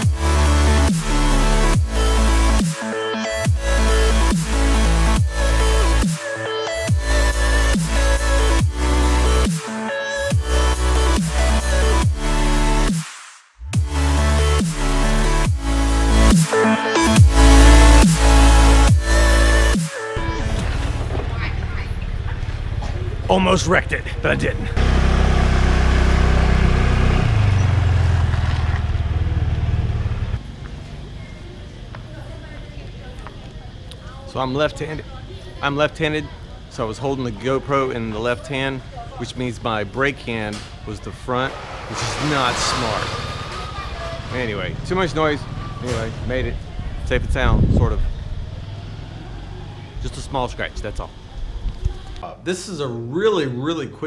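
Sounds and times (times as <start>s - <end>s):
motorbike: 20.3s - 32.8s, 38.8s - 52.2s
low rumble of street traffic: 20.4s - 52.2s
small motorbike engine running: 20.6s - 23.8s, 24.6s - 31.7s.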